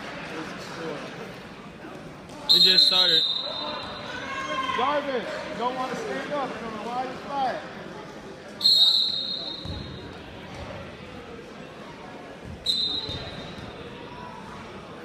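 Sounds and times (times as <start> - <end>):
referee's whistle blasts: 2.5 - 4.2, 8.6 - 10.0, 12.6 - 13.5.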